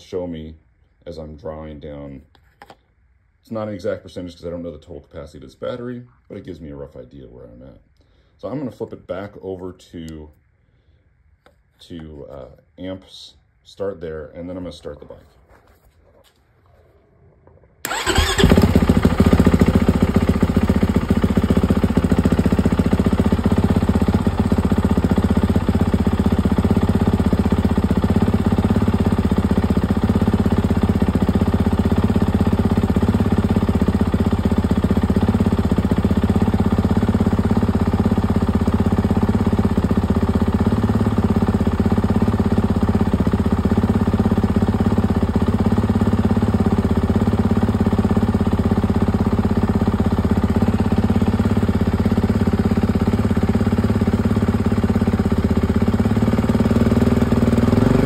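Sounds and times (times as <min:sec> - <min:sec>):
motorcycle engine starting and idling: 0:17.8 - 0:58.0.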